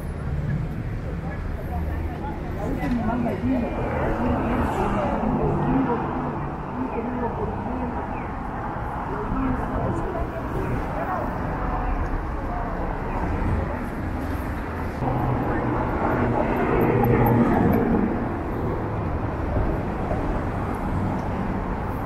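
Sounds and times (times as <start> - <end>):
loud vehicle passing by: 0.0 - 22.0
road traffic engine noise: 0.0 - 22.0.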